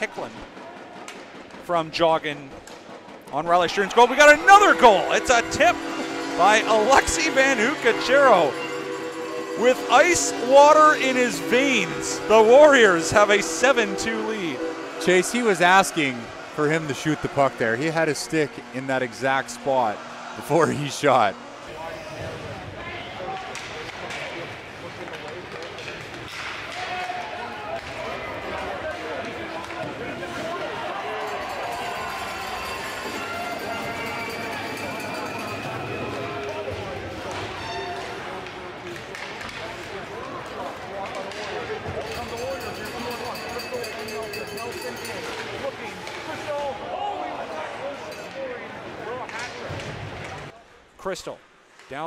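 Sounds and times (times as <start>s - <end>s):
crowd and player voices: 0.0s - 52.0s.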